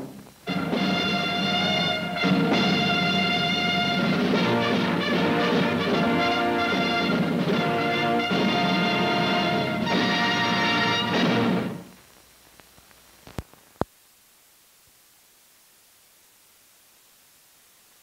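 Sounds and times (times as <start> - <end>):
orchestral music chords: 0.0 - 11.8
faint hiss: 0.0 - 18.0.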